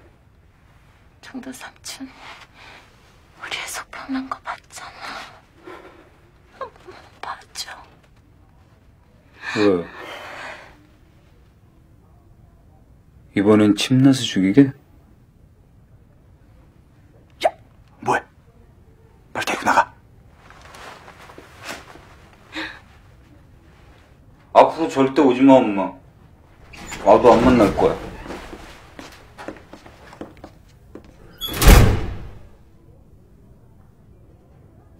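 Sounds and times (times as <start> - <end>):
heavy door sliding and banging: 26.6 - 29.8, 31.2 - 32.6.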